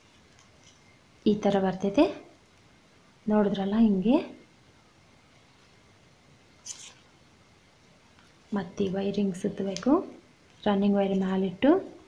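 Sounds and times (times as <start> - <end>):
plastic wire strands scraping: 6.6 - 7.1.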